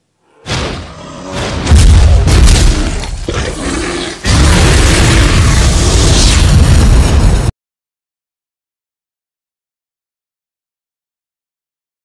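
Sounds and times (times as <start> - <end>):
booming explosions: 0.4 - 3.6, 4.2 - 7.5
rumbling blast: 0.5 - 3.4, 4.2 - 7.5.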